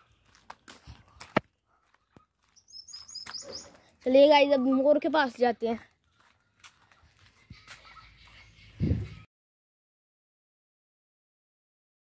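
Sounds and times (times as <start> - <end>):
small bird chirping: 2.1 - 3.9.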